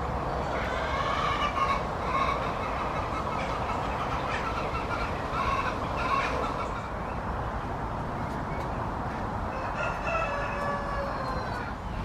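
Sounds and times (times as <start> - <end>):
fowl calling: 0.5 - 6.9.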